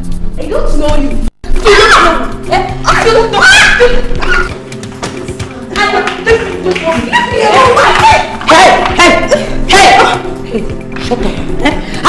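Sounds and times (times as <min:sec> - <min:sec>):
background film music: 0:00.0 - 0:12.0
raised voices: 0:01.5 - 0:04.7, 0:05.6 - 0:10.4.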